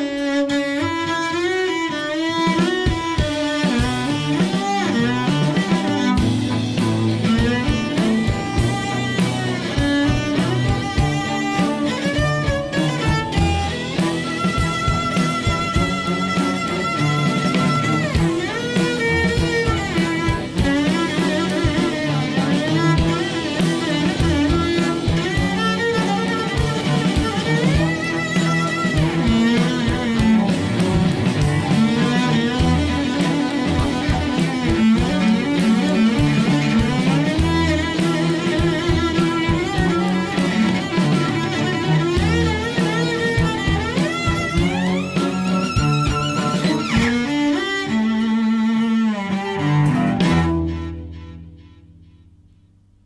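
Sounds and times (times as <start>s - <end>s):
cellos playing upbeat piece: 0.0s - 52.0s.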